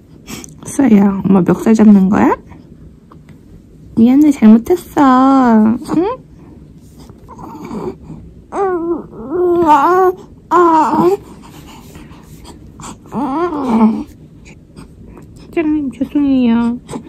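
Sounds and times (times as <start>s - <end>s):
baby babbling: 8.5s - 11.2s, 13.1s - 14.1s.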